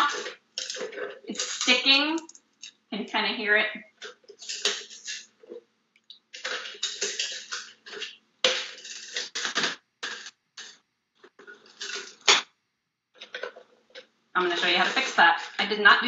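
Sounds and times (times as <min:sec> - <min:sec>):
paper shell crackling and rustling: 0:06.4 - 0:12.4.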